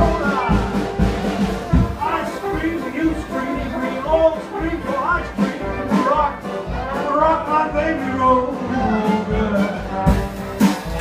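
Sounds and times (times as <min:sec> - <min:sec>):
jazz band playing live: 0:00.0 - 0:11.0.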